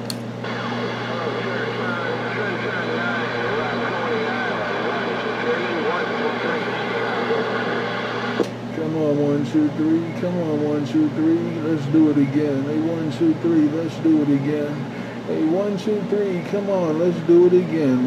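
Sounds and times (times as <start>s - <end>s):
steady hum: 0.0s - 18.0s
radio static hiss: 0.4s - 18.0s.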